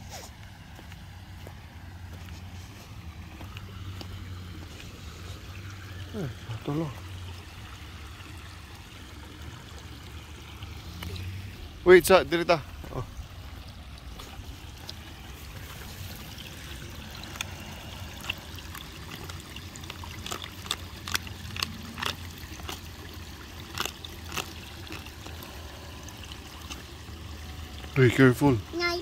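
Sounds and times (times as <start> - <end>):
creek water trickling over stones: 0.0 - 29.0.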